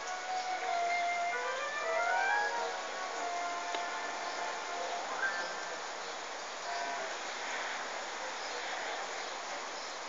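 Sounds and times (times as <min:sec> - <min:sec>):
steady rain: 0:00.0 - 0:10.0.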